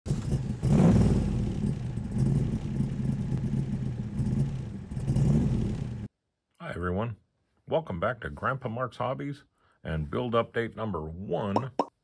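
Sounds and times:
vehicle engine revving: 0.1s - 6.1s.

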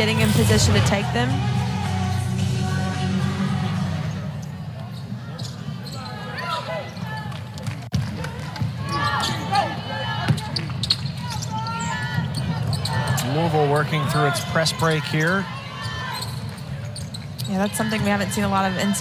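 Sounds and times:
arena music: 0.0s - 4.5s
players and crowd shouting: 5.1s - 7.5s, 8.2s - 16.8s, 17.6s - 19.0s.

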